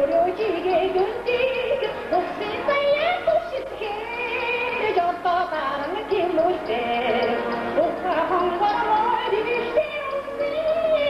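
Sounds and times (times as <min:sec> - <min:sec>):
woman singing melismatic melody: 0:00.0 - 0:11.0.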